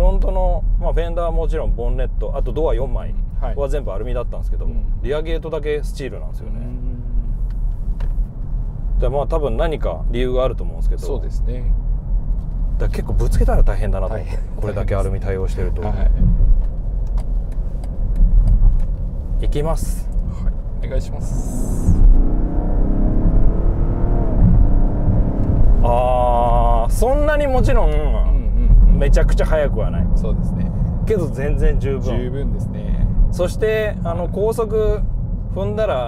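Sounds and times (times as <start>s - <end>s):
road rumble inside car: 0.0s - 36.0s
car engine accelerating hard: 19.4s - 36.0s.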